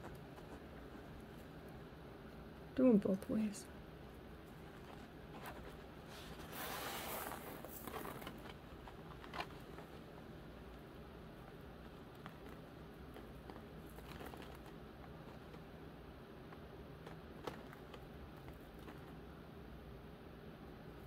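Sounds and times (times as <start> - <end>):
faint rustle: 4.4 - 10.8.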